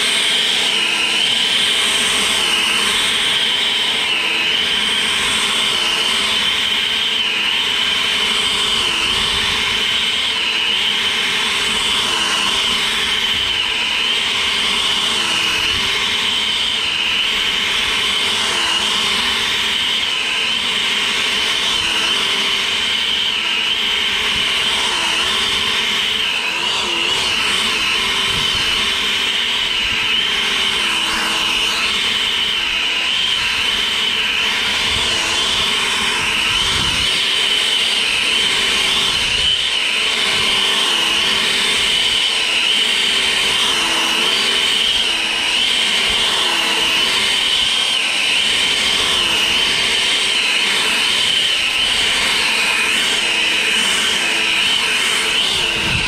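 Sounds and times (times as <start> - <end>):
leaf blower fan whine: 0.0 - 56.0.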